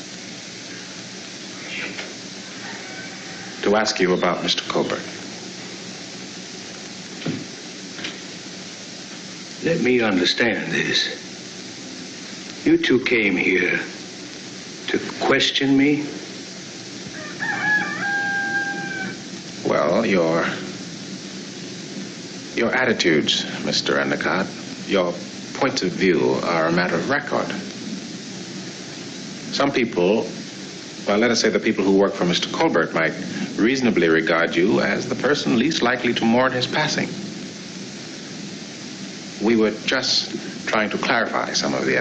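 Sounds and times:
steady hiss: 0.0 - 42.0
bird calling: 0.7 - 5.9, 16.2 - 19.5.

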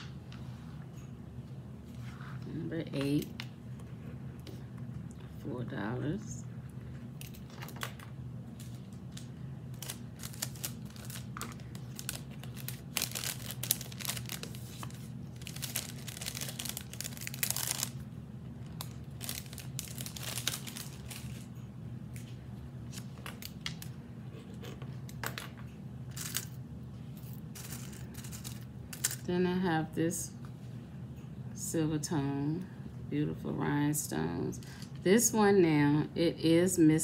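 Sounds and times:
crinkling and rustling: 8.6 - 18.0, 18.6 - 21.5.

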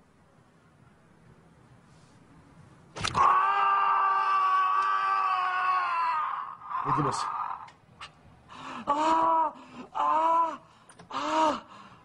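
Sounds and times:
person screaming: 3.0 - 7.7.

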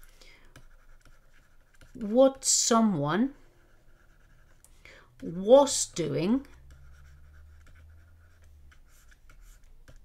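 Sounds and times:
stylus scratching on tablet: 0.0 - 10.0.

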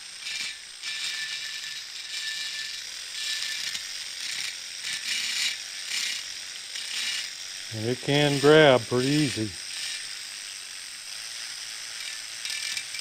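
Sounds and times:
rotary tool grinding buzz: 0.0 - 13.0.

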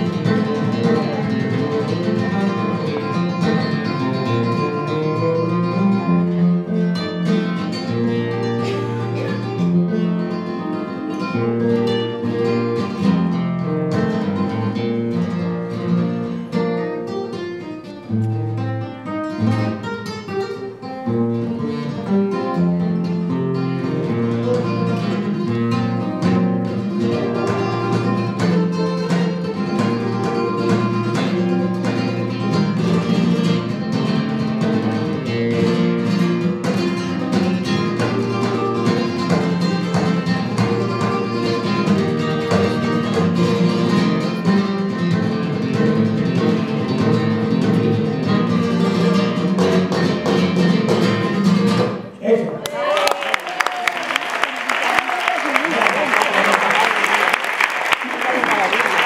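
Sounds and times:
flamenco guitar playing: 0.0 - 52.2.

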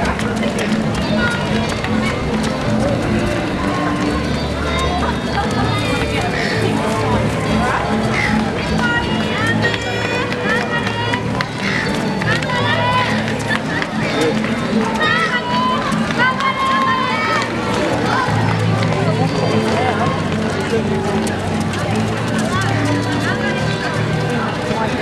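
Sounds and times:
music playing: 0.0 - 25.0
runners passing on foot: 0.0 - 25.0
spectators' voices: 0.0 - 25.0
birds calling: 4.1 - 16.3.

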